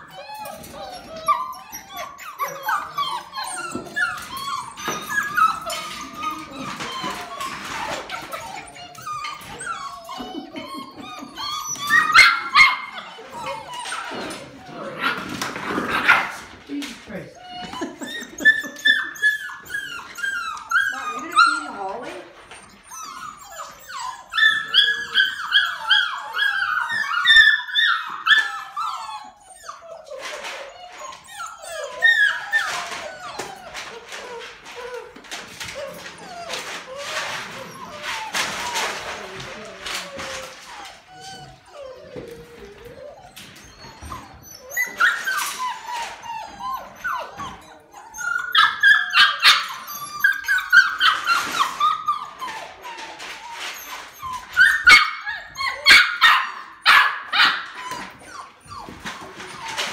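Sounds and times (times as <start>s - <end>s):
puppies whining and yelping: 0.0s - 59.9s.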